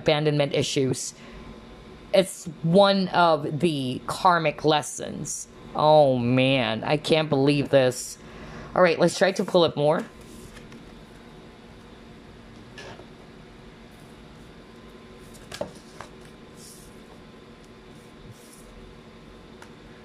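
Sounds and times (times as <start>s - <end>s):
faint hum: 0.0s - 20.0s.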